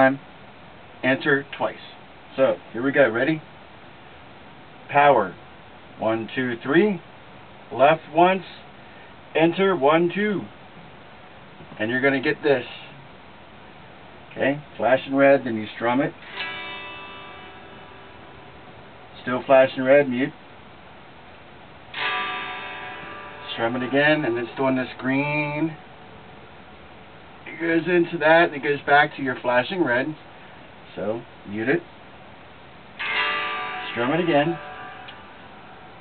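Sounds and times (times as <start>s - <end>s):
electric guitar chord strummed: 16.2s - 19.0s, 21.9s - 25.8s, 33.0s - 36.0s.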